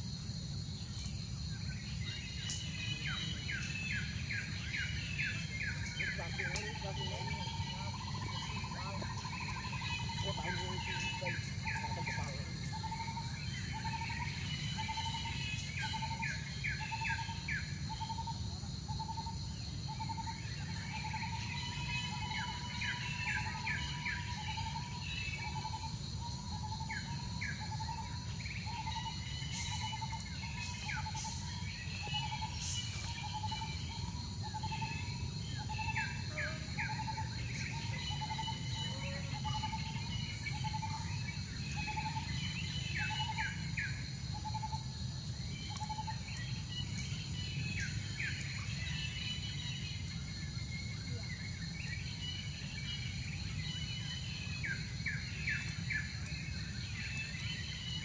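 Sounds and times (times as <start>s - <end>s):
insects droning: 0.0s - 58.0s
birds chirping: 0.8s - 18.3s, 19.1s - 44.8s.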